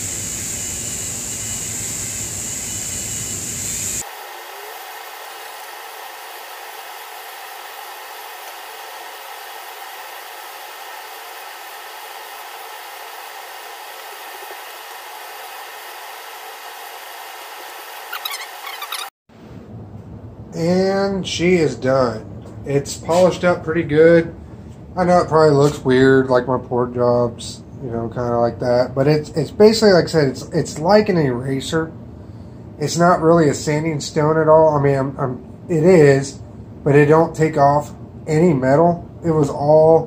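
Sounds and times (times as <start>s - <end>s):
rotary tool whining: 0.0s - 19.2s.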